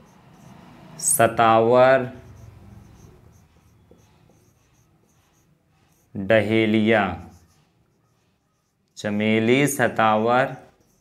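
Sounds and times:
marker pen scratching on board: 0.0s - 11.0s.

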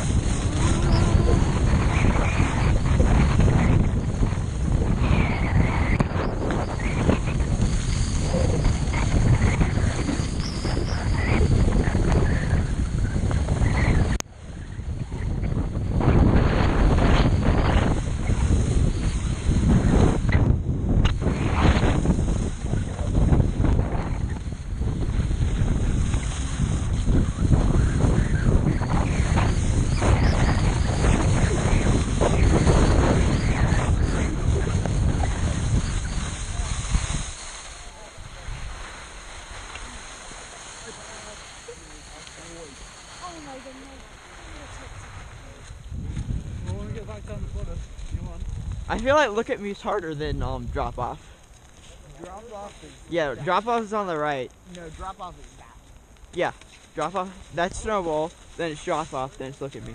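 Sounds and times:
skis sliding over snow: 0.0s - 59.9s
wind rushing over microphone: 0.0s - 59.9s.

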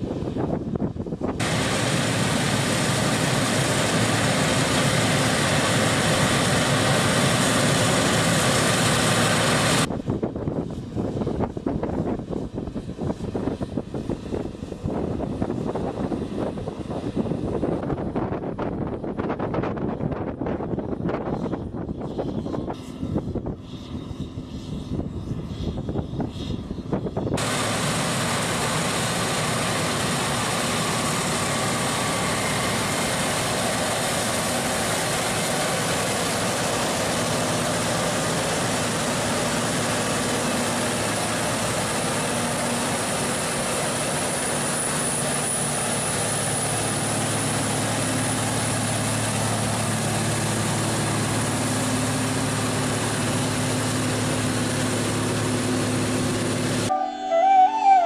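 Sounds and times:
tractor diesel engine droning: 0.0s - 9.9s, 26.9s - 58.0s
wind buffeting microphone: 0.0s - 29.2s.

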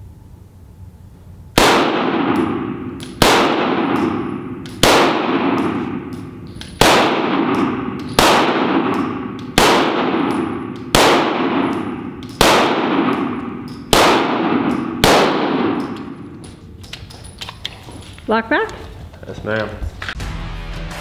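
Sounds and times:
pistol shots echoing indoors: 1.5s - 17.0s.

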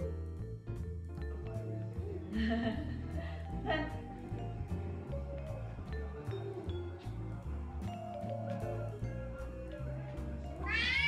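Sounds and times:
background music with bass notes: 0.0s - 11.0s.

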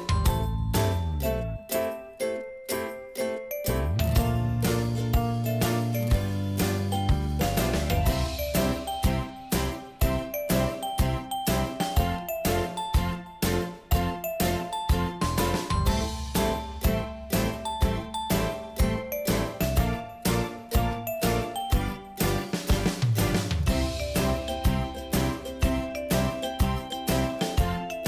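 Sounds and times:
jingly background music with beat: 0.0s - 28.0s.

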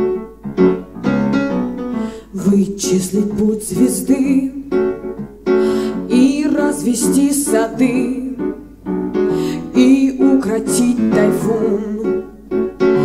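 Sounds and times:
grand piano accompaniment: 0.0s - 13.0s
woman singing: 2.2s - 4.8s, 5.9s - 8.7s, 9.4s - 12.4s.

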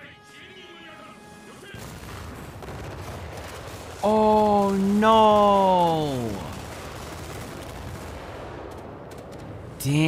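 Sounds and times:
gunfire and explosions: 1.6s - 10.0s
character speaking: 4.0s - 6.6s.

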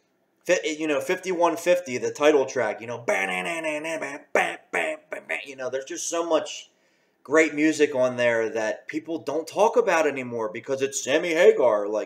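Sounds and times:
man vocalizing guitar riff: 2.8s - 6.1s.

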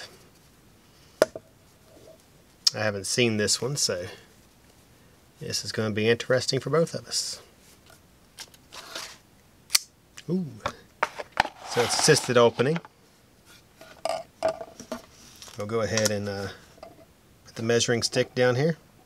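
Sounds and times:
knife rustling out of fabric pouch: 11.4s - 12.7s.

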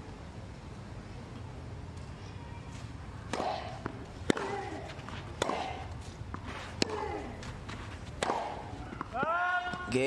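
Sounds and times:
tennis ball hit by racket: 3.3s - 9.9s.

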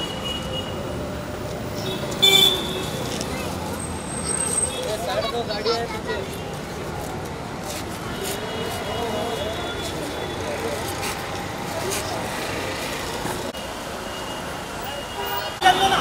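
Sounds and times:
outdoor traffic noise: 0.0s - 16.0s
murmur of crowd talking: 0.7s - 13.6s, 14.2s - 16.0s.

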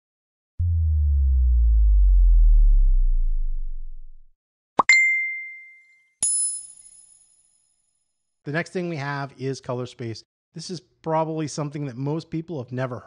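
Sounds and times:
deep bass tone falling in pitch: 0.6s - 4.4s.

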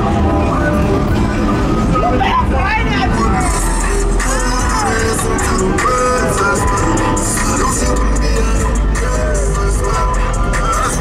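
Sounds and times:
loud music with deep bass: 0.0s - 11.0s
voices: 0.0s - 11.0s.

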